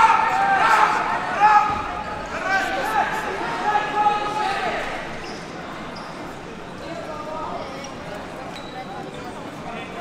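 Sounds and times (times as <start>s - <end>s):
voices shouting in a hall: 0.0s - 6.2s.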